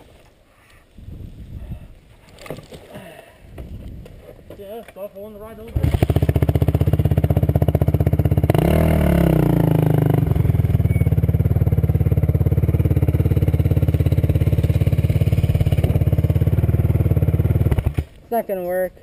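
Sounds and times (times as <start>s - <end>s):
atv engine running: 5.7s - 18.1s.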